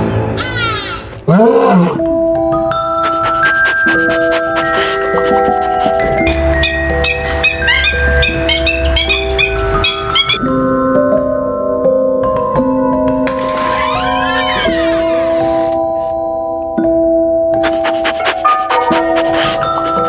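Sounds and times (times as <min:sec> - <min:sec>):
animal-like cry: 0:00.4 - 0:02.0
mallet-like background music: 0:01.4 - 0:13.6, 0:16.1 - 0:20.0.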